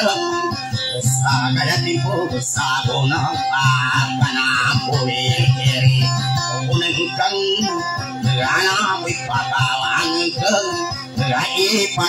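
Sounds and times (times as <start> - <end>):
acoustic guitar strummed: 0.0 - 12.0
person singing: 0.0 - 12.0.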